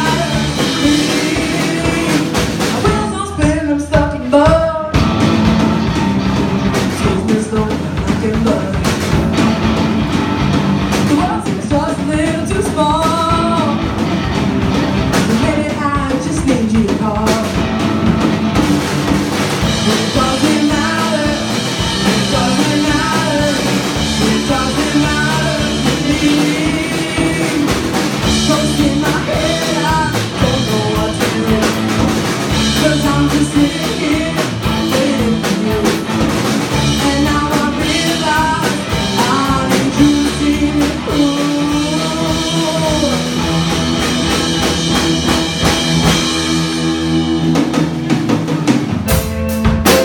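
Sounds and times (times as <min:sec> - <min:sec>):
lead vocals: 0:00.0 - 0:49.2
bass guitar: 0:00.0 - 0:50.0
drum kit: 0:00.0 - 0:50.0
electric guitars: 0:00.0 - 0:50.0.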